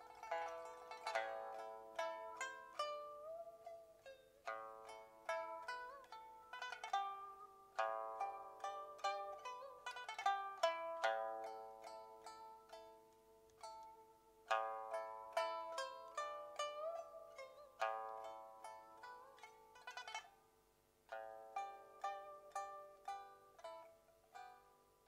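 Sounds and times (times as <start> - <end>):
plucked lute notes: 0.0 - 25.0.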